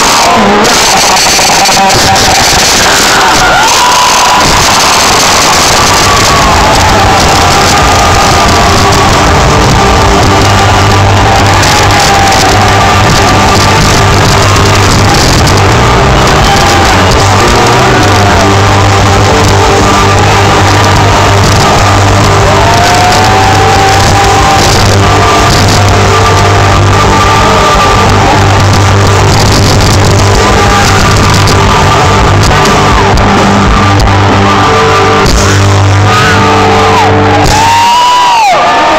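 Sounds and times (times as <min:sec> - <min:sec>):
live rock band playing loudly: 0:00.0 - 0:38.9.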